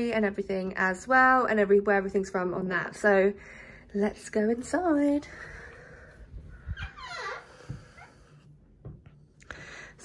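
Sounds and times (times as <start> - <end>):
door hinge creaking: 6.6 - 8.2.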